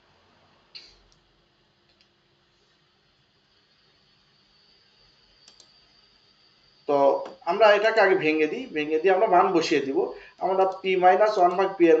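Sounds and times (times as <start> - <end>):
faint room hiss: 0.0 - 12.0
faint clicks: 5.4 - 5.7
man speaking: 6.9 - 12.0.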